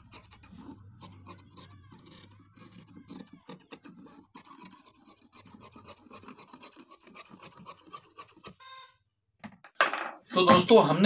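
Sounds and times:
scissors snipping fabric: 0.0 - 8.6.

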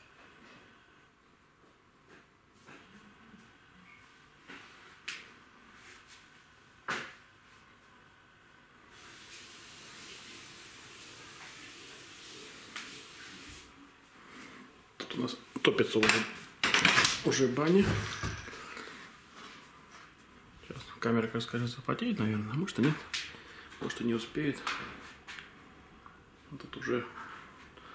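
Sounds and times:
soft steady hiss: 0.0 - 27.9.

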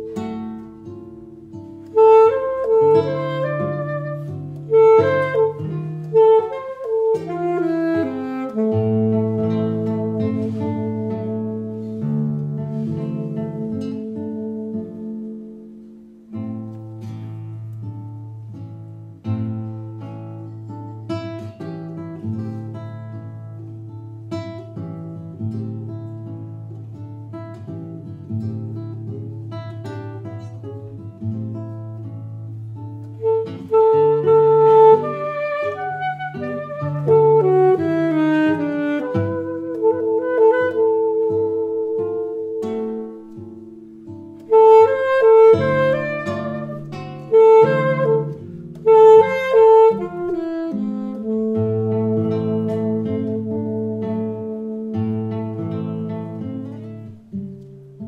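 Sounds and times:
alto saxophone melody: 0.0 - 58.0
classical guitar chords: 0.0 - 58.0.

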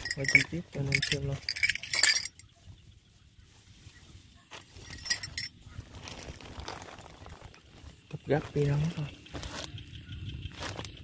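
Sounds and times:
cloth rustling: 0.0 - 8.0.

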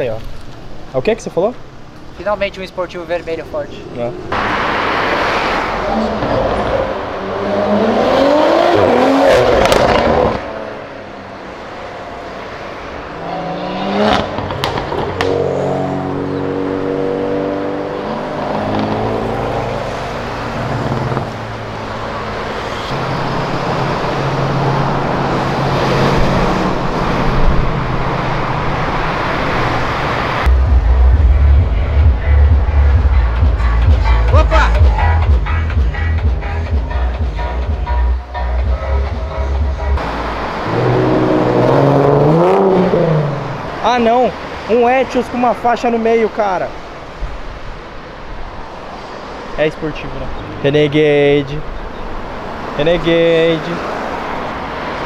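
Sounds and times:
car engines passing and accelerating: 0.0 - 55.0
bass-heavy music with a beat: 30.5 - 40.0.

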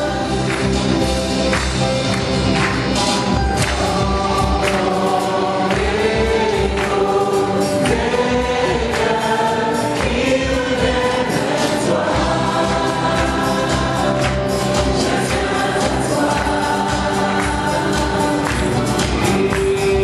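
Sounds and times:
gospel choir singing: 0.0 - 20.0
percussion hits: 0.0 - 20.0.

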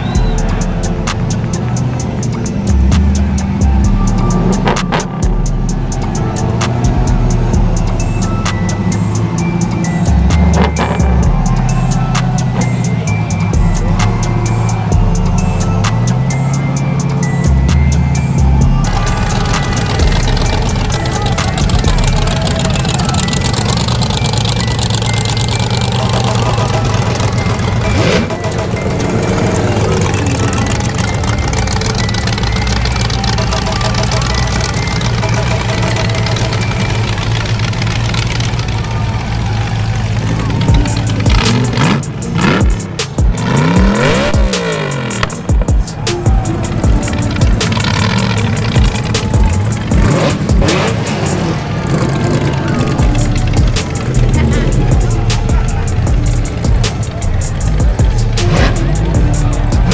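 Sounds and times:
music from a sound system: 0.0 - 37.8, 40.4 - 59.9
cars driving past: 0.0 - 59.9
engine revving: 0.0 - 59.9.

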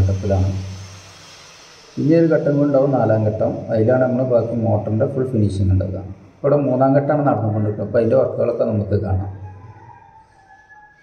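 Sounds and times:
man speaking: 2.0 - 9.5.

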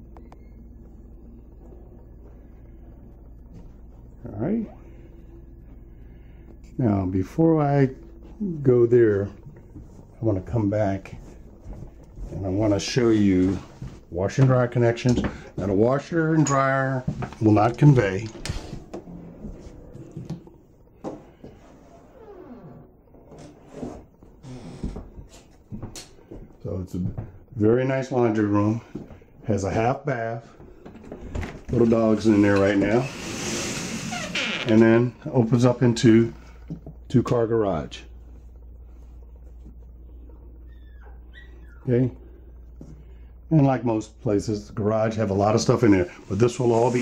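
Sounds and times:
steady low hum: 0.0 - 47.0
small dog whining: 40.6 - 41.9.

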